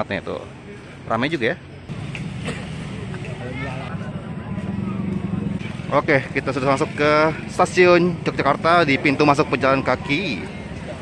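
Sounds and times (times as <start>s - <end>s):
faint crowd voices: 0.0s - 11.0s
vehicle engine running: 1.9s - 8.3s.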